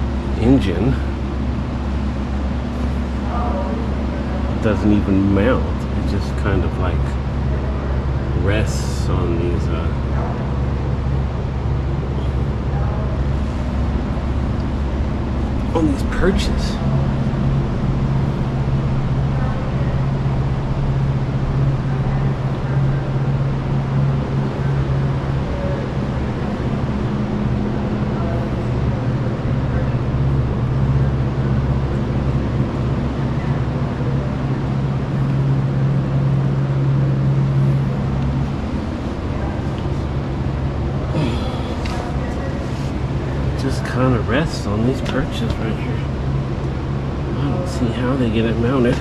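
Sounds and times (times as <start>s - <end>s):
low mechanical hum: 0.0s - 49.0s.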